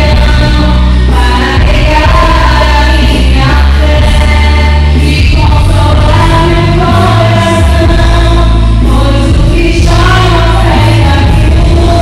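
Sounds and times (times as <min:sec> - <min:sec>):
instrumental accompaniment with bass: 0:00.0 - 0:12.0
women singing worship song: 0:00.0 - 0:12.0.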